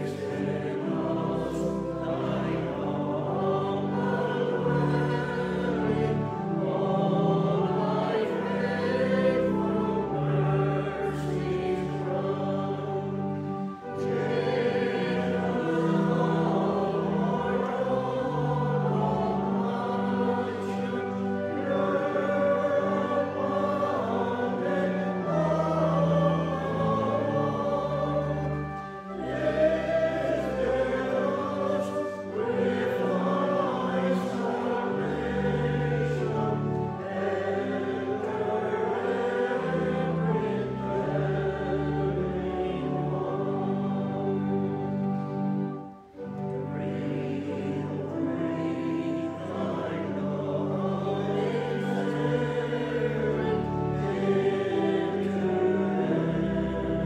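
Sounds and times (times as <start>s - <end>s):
choir singing a hymn: 0.0s - 57.0s
sustained instrumental accompaniment: 0.0s - 57.0s.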